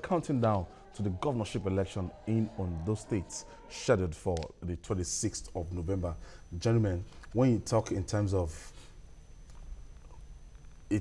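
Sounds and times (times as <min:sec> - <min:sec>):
man speaking: 0:00.0 - 0:08.8
faint high whine: 0:00.0 - 0:11.0
low electrical hum: 0:00.0 - 0:11.0.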